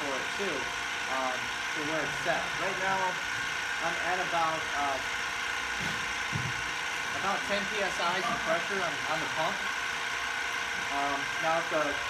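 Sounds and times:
pump running: 0.0 - 12.0.

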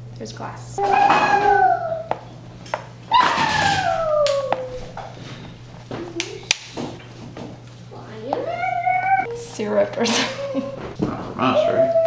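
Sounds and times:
drawn-out falling cry: 0.8 - 2.2, 3.1 - 4.9.

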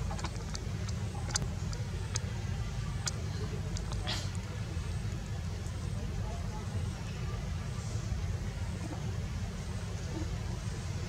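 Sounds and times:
faint background voices: 0.0 - 11.0
low outdoor rumble: 0.0 - 11.0.

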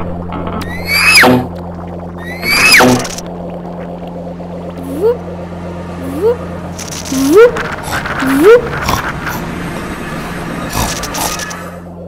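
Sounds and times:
steady low hum: 0.0 - 12.0
voice whistle-like swooping notes: 0.7 - 1.4, 2.2 - 3.2.

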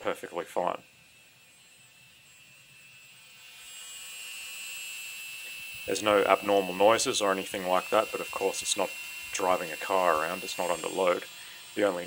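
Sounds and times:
impact gun whine: 0.0 - 12.0.

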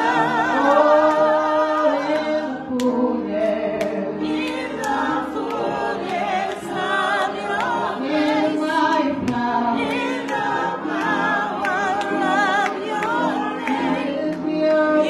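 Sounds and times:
choir singing with vibrato: 0.0 - 15.0.

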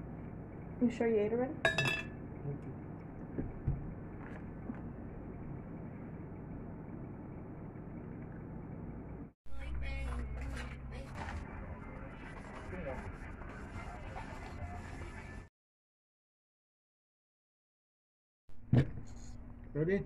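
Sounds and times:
indoor background hum: 0.0 - 15.5, 18.5 - 20.0.

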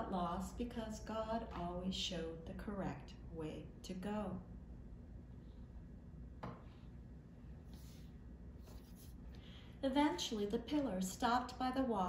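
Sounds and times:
faint short scratching: 7.6 - 9.3.

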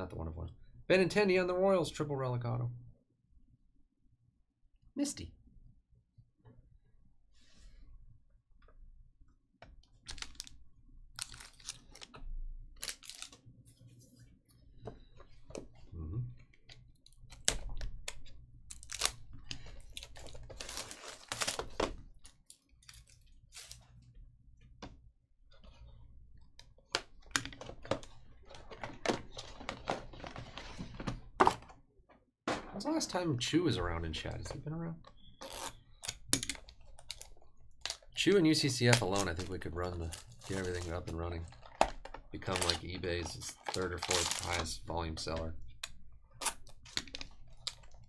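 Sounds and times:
plastic wrap crinkling and tearing: 10.0 - 13.4, 17.1 - 23.9, 35.4 - 44.8.

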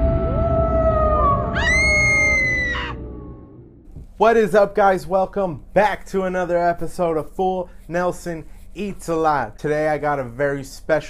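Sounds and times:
scream-like wail: 0.0 - 3.8
low rumble: 0.0 - 3.9.

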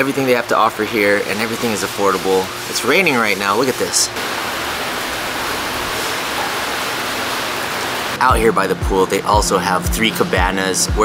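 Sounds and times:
rain falling on pool water: 0.0 - 8.6.

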